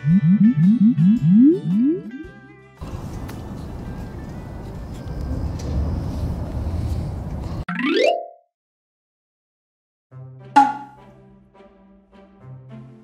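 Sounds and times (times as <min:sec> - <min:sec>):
rising slide-whistle sound effect: 0:00.0 - 0:02.1.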